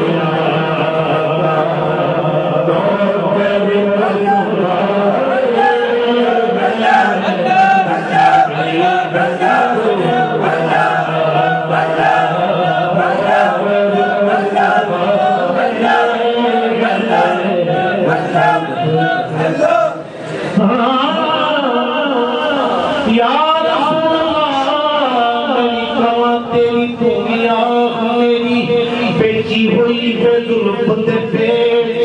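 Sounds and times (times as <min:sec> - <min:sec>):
men chanting devotional chant: 0:00.0 - 0:32.0.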